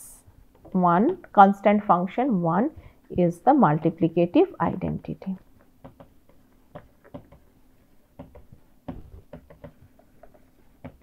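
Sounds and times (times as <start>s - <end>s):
stylus tapping on tablet: 5.8s - 7.5s, 8.2s - 11.0s.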